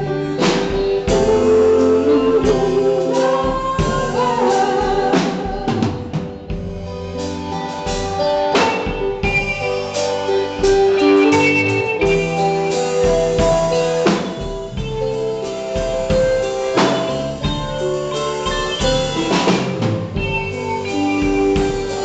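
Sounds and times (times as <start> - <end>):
woman singing: 0.0 - 6.6
live rock band playing: 0.0 - 22.0.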